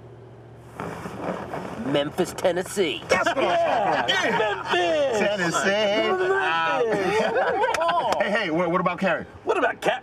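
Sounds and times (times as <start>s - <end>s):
man talking: 1.8s - 10.0s.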